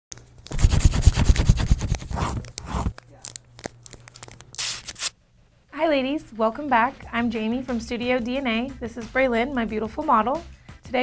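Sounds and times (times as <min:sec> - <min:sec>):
paper crumpling and rustling: 0:00.2 - 0:05.1
woman speaking: 0:05.7 - 0:11.0.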